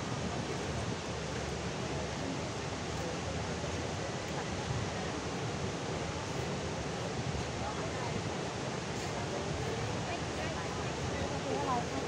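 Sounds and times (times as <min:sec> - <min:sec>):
water rushing down a spillway: 0:00.0 - 0:12.0.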